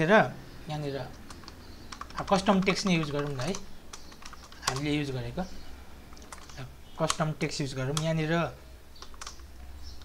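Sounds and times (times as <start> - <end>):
person talking: 0.0 - 1.3, 2.1 - 3.7, 4.6 - 5.6, 6.4 - 8.6
keyboard key clicks: 1.1 - 4.9, 6.1 - 7.3, 7.9 - 8.2, 9.0 - 10.0.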